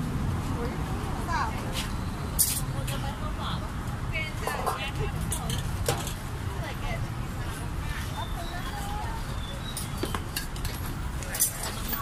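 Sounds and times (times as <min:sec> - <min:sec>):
street traffic rumble: 0:00.0 - 0:12.0
faint voices: 0:02.6 - 0:12.0.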